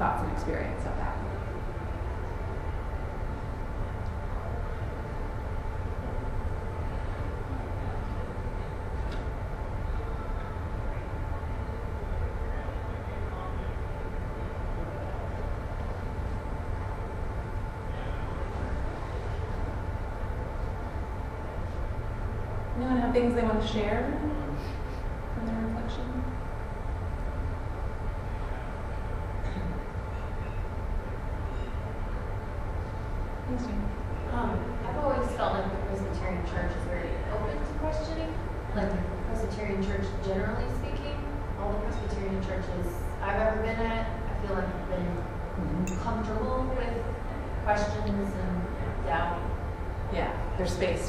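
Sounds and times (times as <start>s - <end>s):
faint constant hum: 0.0s - 51.0s
faint even whine: 0.0s - 51.0s
low room rumble: 0.0s - 51.0s.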